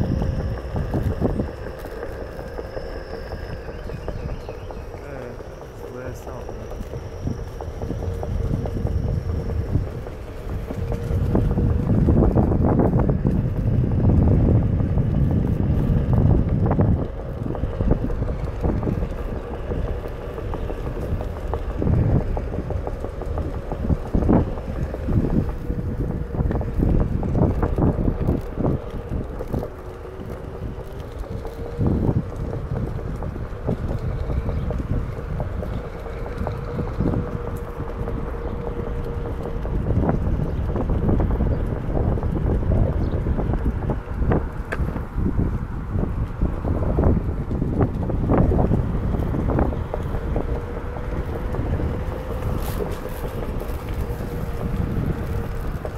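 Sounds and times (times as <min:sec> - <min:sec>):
electric hub motor whine: 0:00.0 - 0:55.9
wind rushing over microphone: 0:00.0 - 0:55.9.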